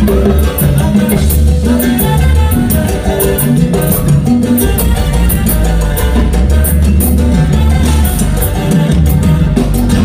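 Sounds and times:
live latin band music: 0.0 - 10.0.

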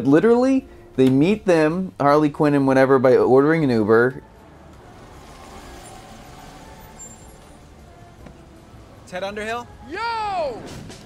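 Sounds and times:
faint street ambience: 0.0 - 11.0
car engine idling: 3.7 - 9.8.

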